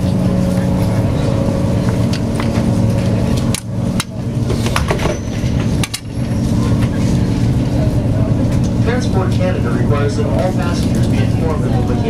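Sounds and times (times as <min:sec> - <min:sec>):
ferry engines droning: 0:00.0 - 0:12.0.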